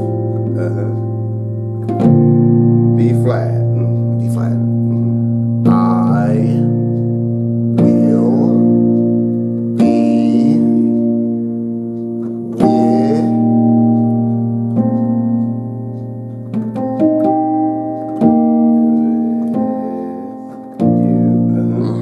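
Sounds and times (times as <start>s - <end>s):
piano playing slow gospel chords: 0.0s - 22.0s.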